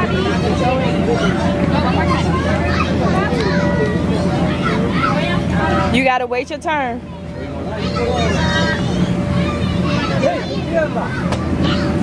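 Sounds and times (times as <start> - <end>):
chatter of children and adults: 0.0 - 12.0.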